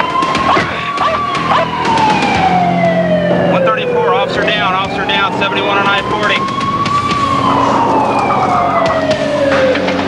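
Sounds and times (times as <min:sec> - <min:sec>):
police car siren wailing: 0:00.0 - 0:10.0.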